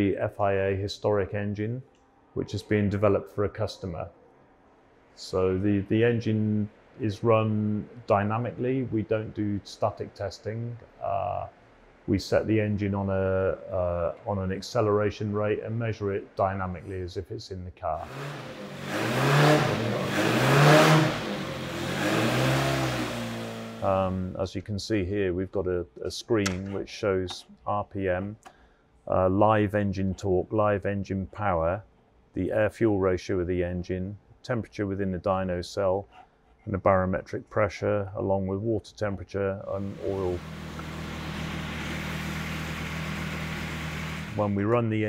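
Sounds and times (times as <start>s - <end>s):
racing engine revving on dyno: 18.0s - 24.2s, 39.8s - 44.6s.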